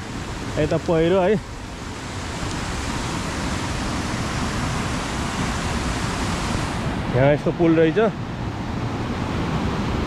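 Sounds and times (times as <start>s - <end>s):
river rushing over rocks: 0.0s - 10.0s.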